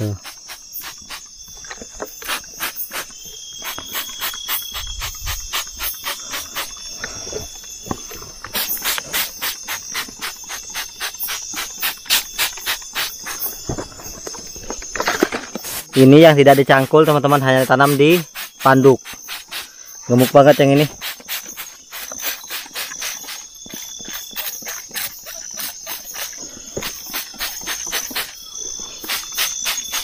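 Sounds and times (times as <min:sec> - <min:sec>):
night insects trilling: 0:00.0 - 0:30.0
spray bottle spraying hisses: 0:00.2 - 0:01.3, 0:02.0 - 0:06.8, 0:08.5 - 0:13.6, 0:15.6 - 0:28.4, 0:29.0 - 0:30.0.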